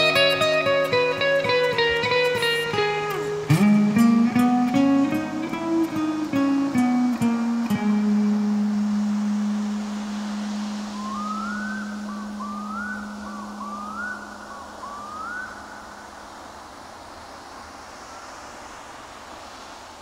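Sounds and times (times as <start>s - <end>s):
fingerpicked acoustic guitar: 0.0s - 10.8s.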